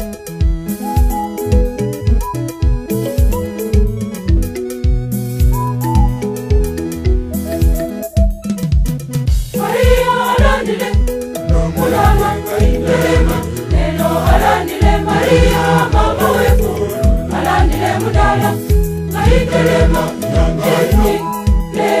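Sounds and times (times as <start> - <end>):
backing music: 0.0 - 22.0
choir singing gospel: 9.6 - 22.0
low drum beat: 11.5 - 21.2.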